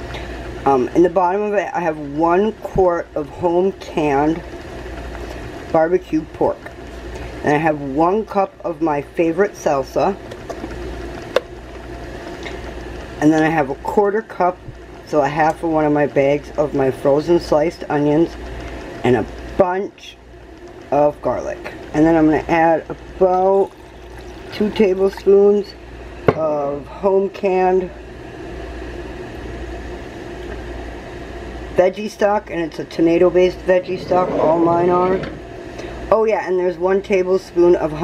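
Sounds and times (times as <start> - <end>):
low background hum: 0.0 - 38.0.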